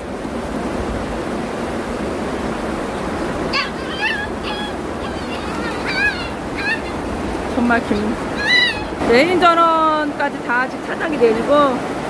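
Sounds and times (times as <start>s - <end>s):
floodwater rushing: 0.0s - 12.0s
pet giving high cries: 3.4s - 9.2s.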